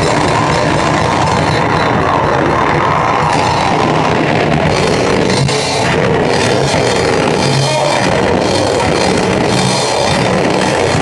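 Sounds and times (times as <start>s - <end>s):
drum kit: 0.0s - 11.0s
rock band playing live: 0.0s - 11.0s.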